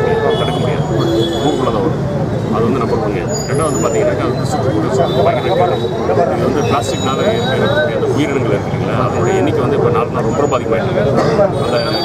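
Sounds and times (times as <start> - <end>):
low outdoor background noise: 0.0 - 12.0
man speaking: 0.0 - 12.0.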